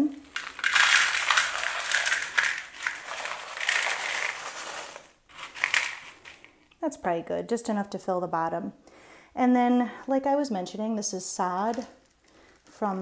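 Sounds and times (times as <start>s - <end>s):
gravel rattling into plastic tray: 0.2s - 6.5s.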